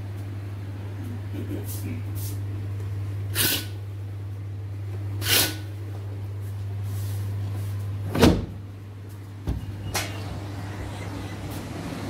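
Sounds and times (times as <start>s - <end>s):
steady low hum: 0.0s - 12.0s
door thump: 8.1s - 8.6s
wooden doors clattering open: 8.1s - 8.6s.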